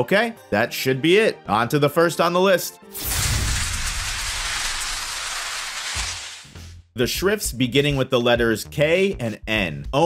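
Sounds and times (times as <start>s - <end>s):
rushing hiss: 3.0s - 6.6s.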